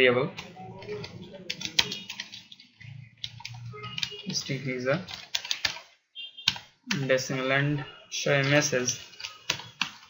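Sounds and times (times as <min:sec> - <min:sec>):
computer keyboard typing: 0:00.4 - 0:07.3, 0:08.3 - 0:10.0.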